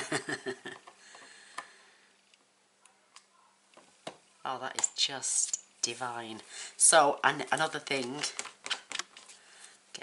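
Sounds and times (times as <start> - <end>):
woman laughing: 0.0 - 0.8.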